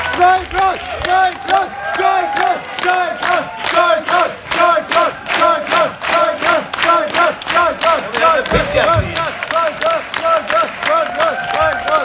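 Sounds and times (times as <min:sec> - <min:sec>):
crowd chanting in rhythm: 0:00.0 - 0:12.0.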